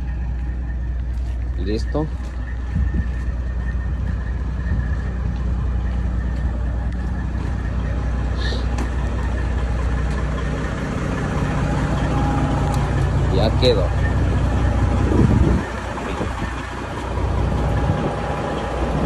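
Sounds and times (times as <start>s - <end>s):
diesel truck engine idling: 0.0s - 19.0s.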